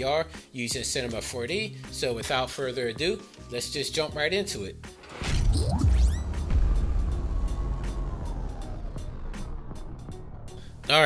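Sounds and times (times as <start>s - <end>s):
low rumble: 5.1s - 11.0s
downward gliding tone: 5.2s - 10.9s.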